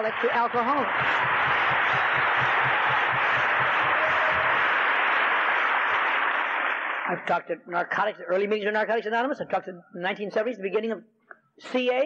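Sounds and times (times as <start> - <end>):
large audience applauding: 0.0 - 7.3.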